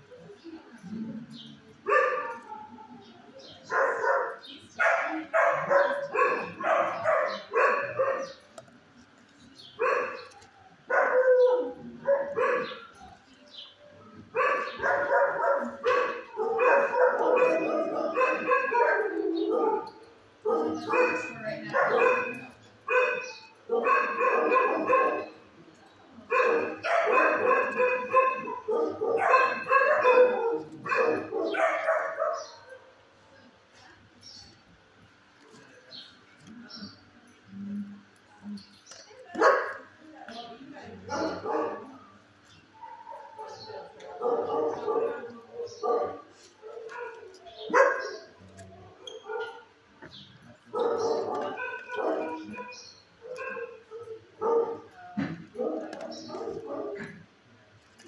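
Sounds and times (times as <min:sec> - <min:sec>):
dogs barking: 0:01.2 - 0:33.0, 0:39.3 - 0:57.3.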